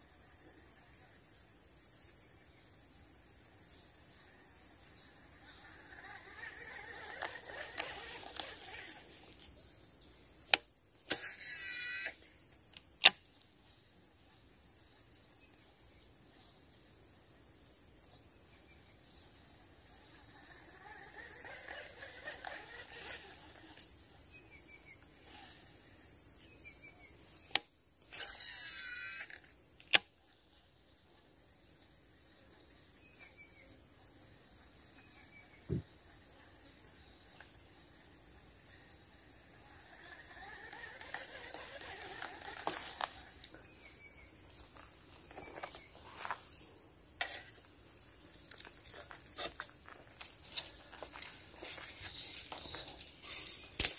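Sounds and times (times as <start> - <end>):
high-pitched insect drone: 3.2 - 12.7, 18.8 - 30.0, 34.3 - 53.9
fishing reel spool whirring: 4.8 - 12.4, 19.8 - 26.1, 26.7 - 29.9, 38.5 - 46.0
fishing reel clicking: 5.7 - 9.3, 20.8 - 23.9, 27.5 - 29.5, 39.8 - 43.6.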